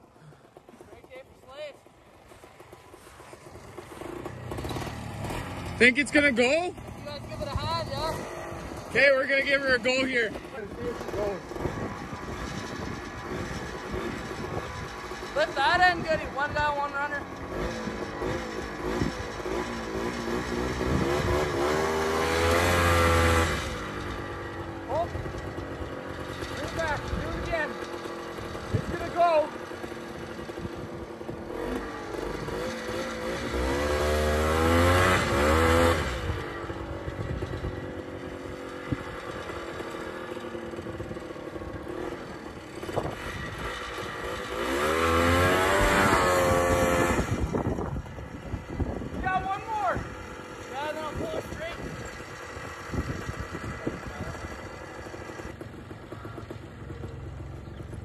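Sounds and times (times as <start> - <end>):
snowmobile engines revving: 0.0 - 57.2.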